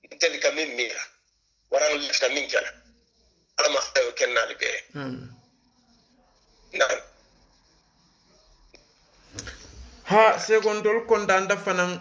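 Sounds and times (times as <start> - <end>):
man speaking: 0.0 - 1.1, 1.7 - 2.8, 3.6 - 5.3, 6.7 - 7.2.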